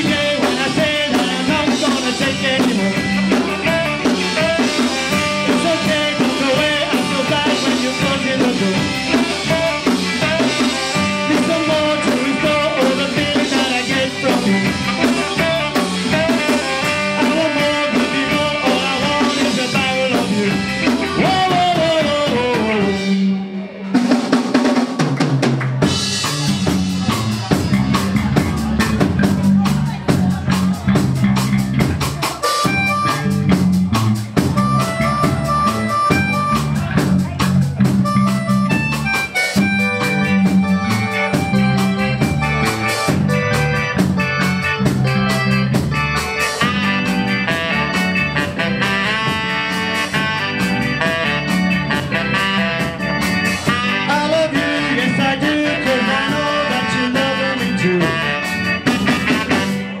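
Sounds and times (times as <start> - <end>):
repeating bass line: 0.0 - 24.2, 25.8 - 60.0
ska band playing live: 0.0 - 60.0.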